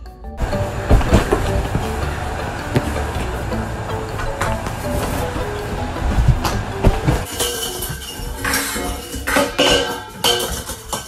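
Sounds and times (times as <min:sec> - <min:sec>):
metallic clinks and clatters: 0:07.2 - 0:11.0.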